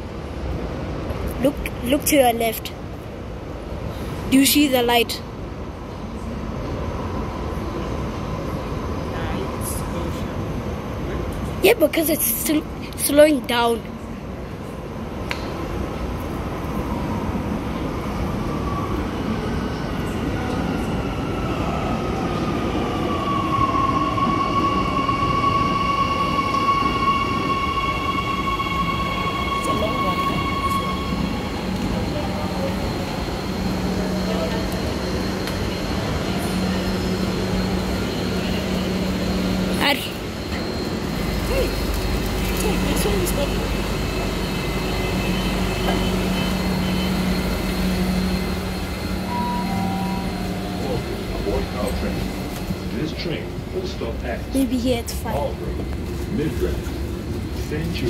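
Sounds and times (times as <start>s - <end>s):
electric train motor whine: 24.8s - 53.1s.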